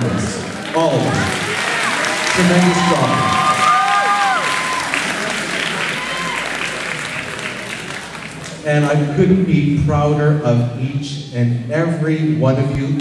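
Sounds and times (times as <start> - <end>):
audience applauding: 0.0 - 8.6
voices shouting: 0.8 - 6.9.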